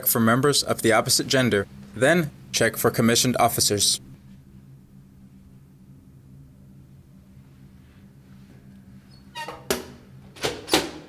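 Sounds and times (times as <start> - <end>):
metal flap hinge squeaking: 9.1 - 9.7.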